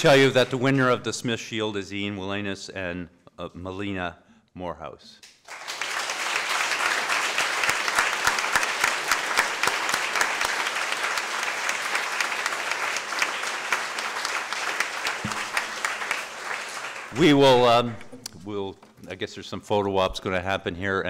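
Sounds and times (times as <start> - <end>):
audience applauding: 5.4 - 18.3.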